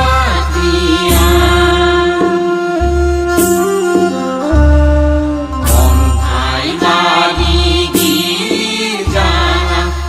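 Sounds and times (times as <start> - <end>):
chanted devotional singing: 0.0 - 2.4, 5.6 - 10.0
sharp drum beat: 0.0 - 10.0.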